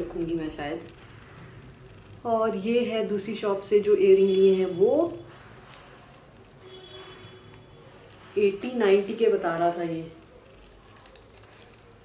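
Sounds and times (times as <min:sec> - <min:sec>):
woman speaking: 0:00.0 - 0:00.9, 0:02.2 - 0:05.2, 0:08.4 - 0:10.2.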